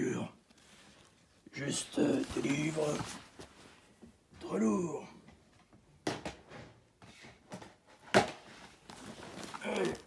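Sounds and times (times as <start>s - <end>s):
bag rustling: 1.7s - 3.5s, 8.7s - 10.0s.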